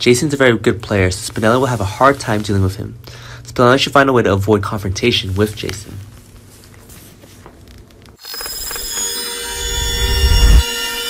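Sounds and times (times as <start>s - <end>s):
high ringing tones: 8.2s - 11.0s
low swell: 9.4s - 10.8s.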